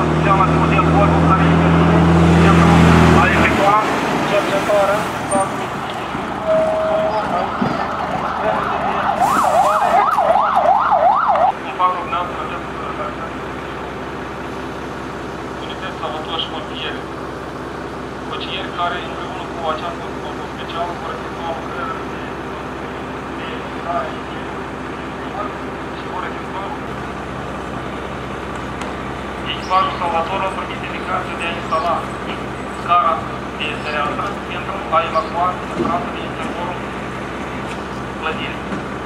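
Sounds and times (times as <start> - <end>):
fire engine siren yelping: 0.0 - 11.6
diesel engine idling: 0.0 - 39.0.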